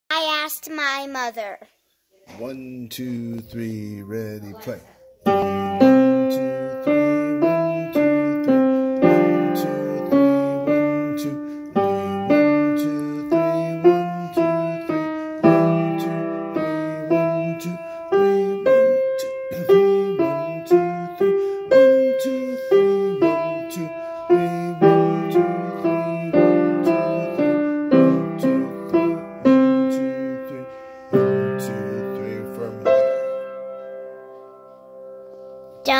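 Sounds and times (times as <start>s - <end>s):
upright piano playing: 3.1s - 35.9s.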